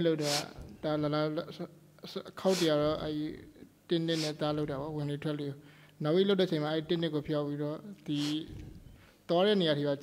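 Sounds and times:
man speaking: 0:00.0 - 0:08.6.

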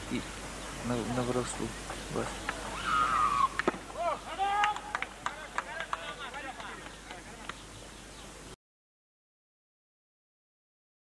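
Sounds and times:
voices calling out: 0:00.0 - 0:08.0.

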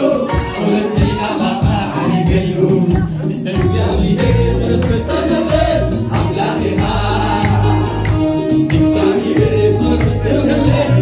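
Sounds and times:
gospel music with deep bass: 0:00.0 - 0:11.0
man singing through microphone: 0:00.0 - 0:11.0.

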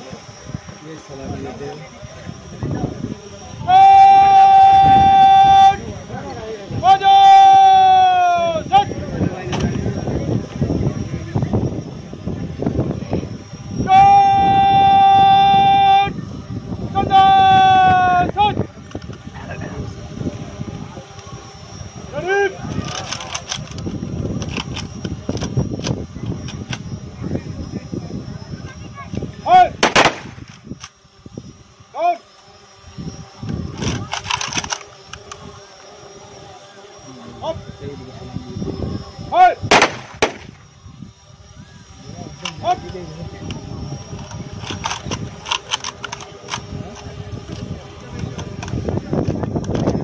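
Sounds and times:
crowd murmur: 0:00.0 - 0:50.0
horn long steady note: 0:02.4 - 0:08.7, 0:12.6 - 0:18.7
person shouting commands: 0:03.6 - 0:05.8, 0:06.8 - 0:08.9, 0:13.9 - 0:16.1, 0:16.9 - 0:18.6, 0:29.4 - 0:29.7
rifle shots: 0:29.8 - 0:30.4, 0:39.7 - 0:40.5.

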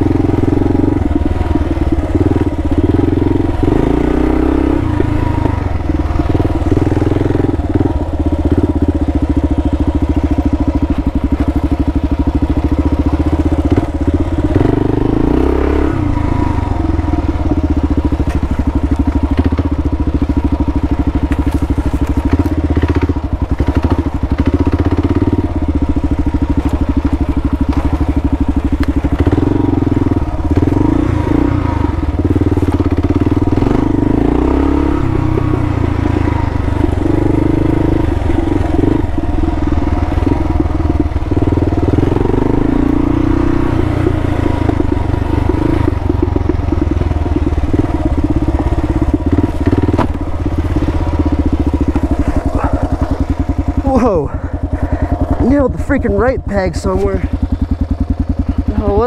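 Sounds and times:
motorcycle engine revving: 0:00.0 - 0:59.0
motorcycle knocking on rough ground: 0:17.1 - 0:59.0.

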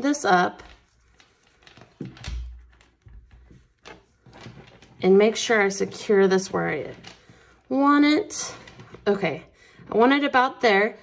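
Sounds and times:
faint clicks and rustles: 0:00.5 - 0:10.0.

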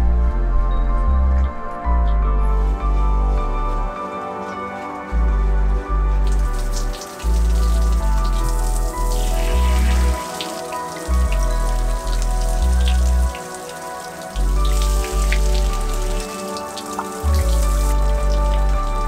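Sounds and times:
background music with deep bass: 0:00.0 - 0:19.0
shower water hissing: 0:06.2 - 0:19.0.

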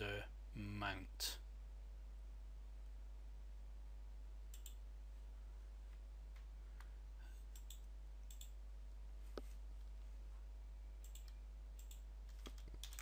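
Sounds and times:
steady low hum: 0:00.0 - 0:13.0
computer mouse clicks: 0:04.5 - 0:04.8, 0:07.5 - 0:08.6, 0:11.0 - 0:13.0.

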